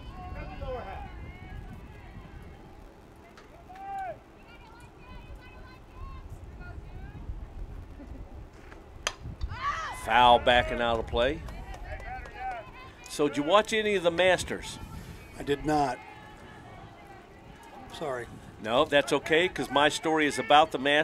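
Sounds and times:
steady low rumble: 0.0 - 13.0
bat hitting softball: 9.0 - 9.6
faint distant voices: 9.8 - 21.0.

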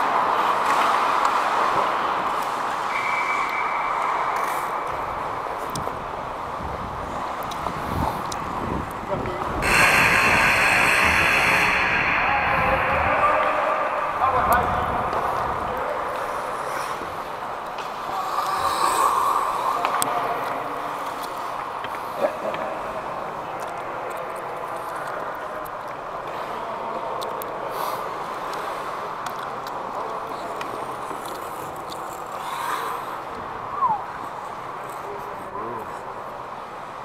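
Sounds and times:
skating and arena noise: 0.0 - 37.0.

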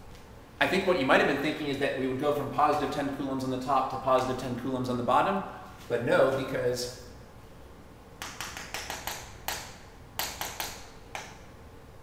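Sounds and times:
chalk tapping on chalkboard: 8.2 - 11.4.

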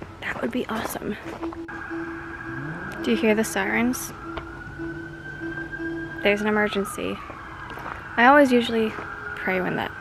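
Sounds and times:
distant siren wailing: 1.2 - 10.0.

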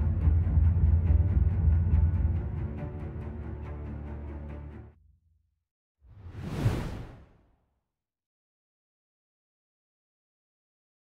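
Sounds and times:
whoosh rush of noise: 6.1 - 7.4.

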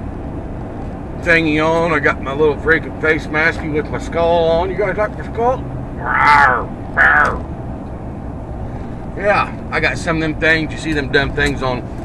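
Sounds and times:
truck engine idling: 1.3 - 12.0.

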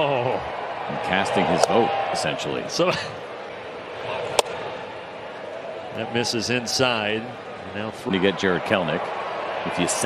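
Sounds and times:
crowd noise: 0.0 - 10.0
baseball popping into mitt: 4.3 - 4.6.

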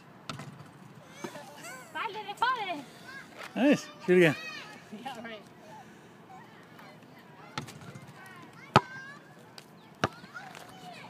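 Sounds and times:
basketball bouncing on asphalt: 0.2 - 1.4, 7.5 - 9.1, 9.9 - 10.8
basketball hitting hoop: 0.3 - 0.7.

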